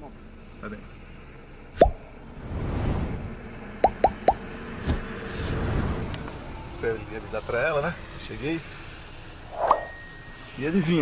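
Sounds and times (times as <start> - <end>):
low rumble: 1.8 - 7.0.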